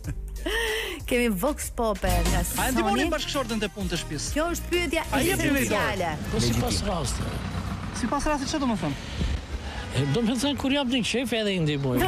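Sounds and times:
traffic rumble: 4.9 - 12.0.

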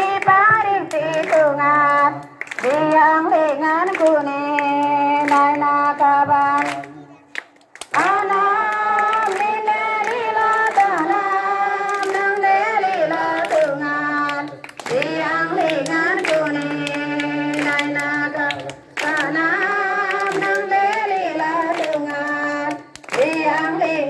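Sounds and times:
hands clapping along: 0.0 - 24.0
congregation singing a hymn: 8.0 - 24.0.

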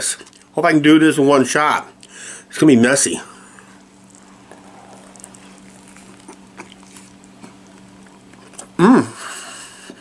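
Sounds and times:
steady low hum: 0.0 - 10.0
man chewing burger: 3.3 - 10.0
wet mouth clicks: 3.7 - 8.7.

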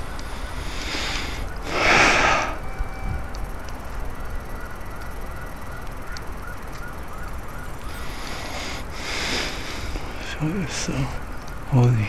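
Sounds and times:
distant police siren yelping: 0.0 - 12.0
wind rumble on microphone: 0.0 - 12.0.

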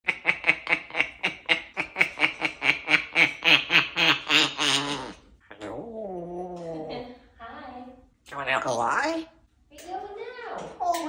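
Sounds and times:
parrot imitating human laugh: 0.1 - 5.2.

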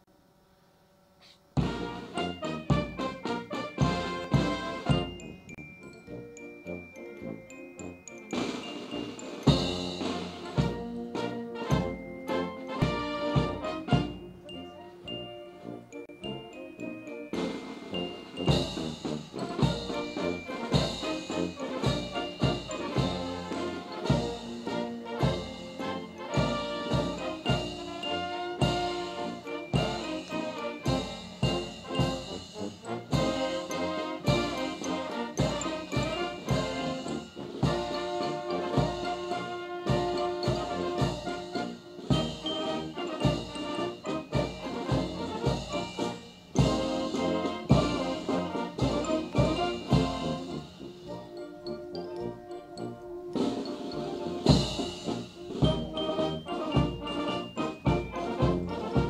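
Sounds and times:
bass drum beat: 1.6 - 3.1, 3.8 - 5.3
military band playing a march: 1.6 - 59.0.

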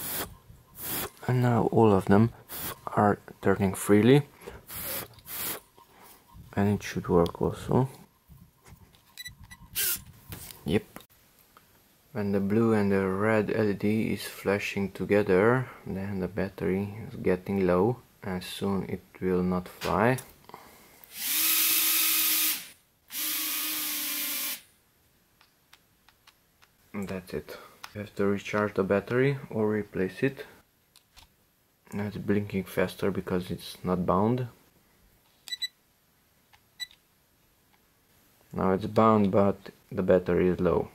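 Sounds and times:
loud hiss: 0.0 - 1.2, 2.5 - 2.9, 4.6 - 5.6.

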